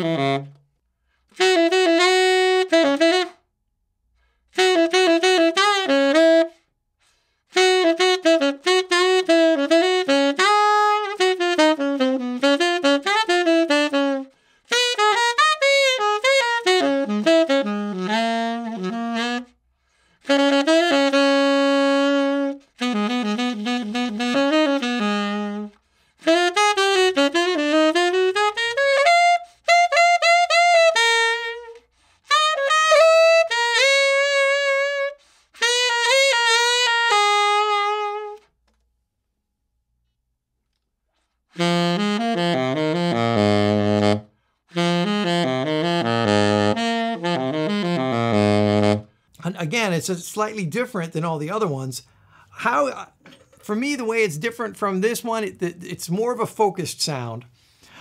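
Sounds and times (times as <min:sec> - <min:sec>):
tenor saxophone jazz solo: 0:00.0 - 0:03.5, 0:04.2 - 0:38.6, 0:41.2 - 0:58.0.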